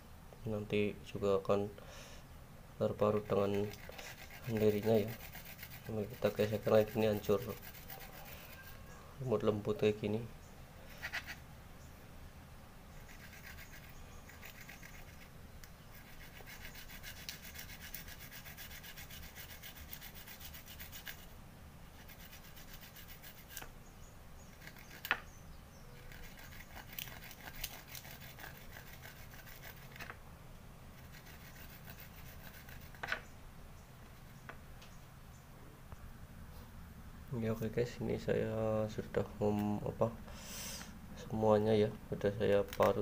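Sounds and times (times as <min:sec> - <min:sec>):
root being grated: 0:02.9 - 0:08.9, 0:13.0 - 0:21.3, 0:22.0 - 0:23.7, 0:26.0 - 0:30.2, 0:31.0 - 0:33.2.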